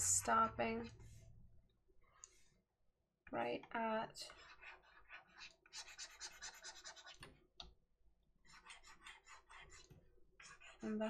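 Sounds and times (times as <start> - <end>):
stylus scratching on drawing tablet: 0.1 - 1.3, 2.0 - 2.6, 4.1 - 7.3, 8.4 - 11.0.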